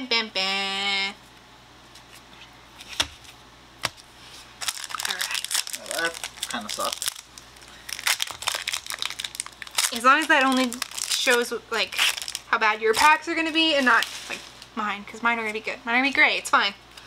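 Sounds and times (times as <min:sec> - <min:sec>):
foil wrapper crinkling and tearing: 0:04.6 - 0:14.7.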